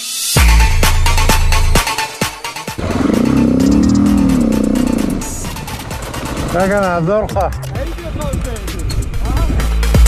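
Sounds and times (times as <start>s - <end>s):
motorcycle engine revving: 2.7s - 7.0s.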